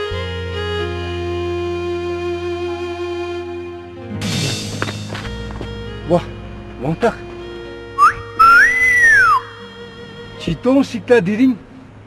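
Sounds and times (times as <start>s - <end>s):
faint background music: 0.0s - 12.0s
person whistling: 8.0s - 9.5s.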